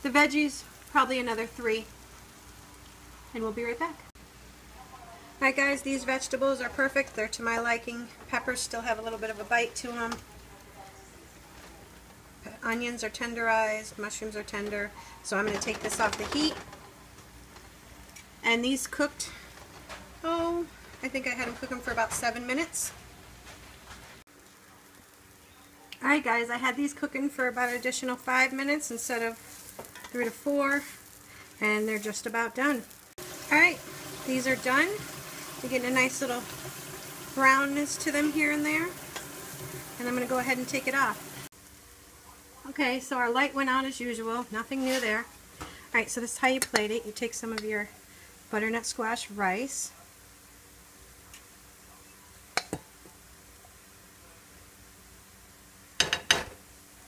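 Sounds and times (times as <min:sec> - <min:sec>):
vegetables sizzling in oil: 0:00.0 - 0:10.6, 0:11.3 - 0:57.0.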